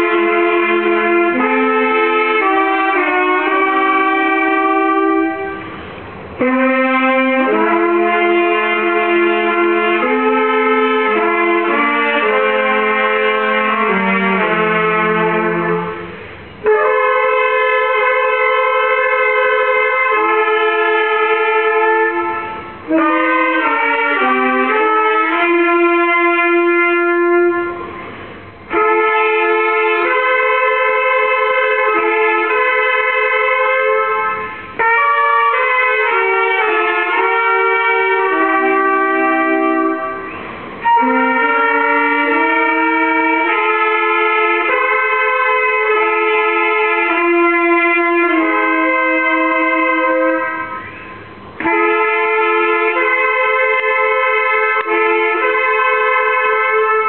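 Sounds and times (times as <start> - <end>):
trumpets and saxophone chords: 0.0 - 57.0.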